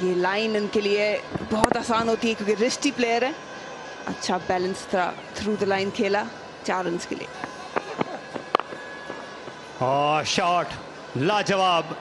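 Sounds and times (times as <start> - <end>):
faint stadium ambience: 0.0 - 12.0
cricket bat striking ball: 7.4 - 9.6.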